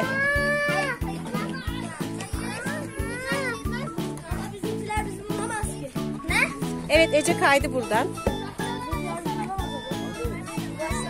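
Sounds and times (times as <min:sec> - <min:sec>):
background music with steady beat: 0:00.0 - 0:11.0
voices: 0:00.0 - 0:11.0.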